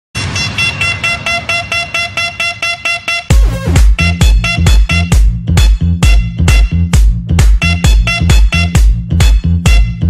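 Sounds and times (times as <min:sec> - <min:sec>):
horn-like synth stabs: 0:00.1 - 0:10.0
low bass: 0:03.3 - 0:10.0.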